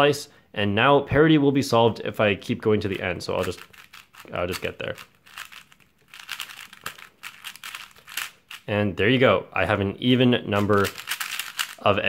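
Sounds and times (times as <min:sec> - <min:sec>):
puzzle cube clicking: 0:03.4 - 0:08.7, 0:10.6 - 0:11.9.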